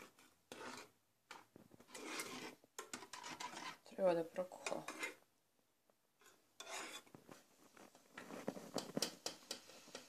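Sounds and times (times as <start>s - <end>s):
metal spoon scraping saucepan: 0.0s - 5.2s, 6.2s - 7.2s, 8.4s - 10.0s.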